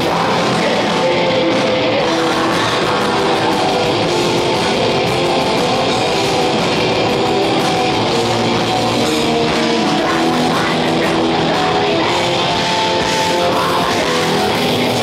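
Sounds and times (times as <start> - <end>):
distorted guitars: 0.0 - 15.0
fast drumming with cymbals: 0.0 - 15.0.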